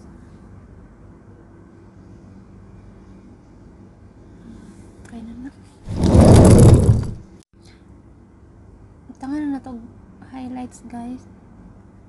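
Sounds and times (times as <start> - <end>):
loud rattling scraping: 5.9 - 7.4.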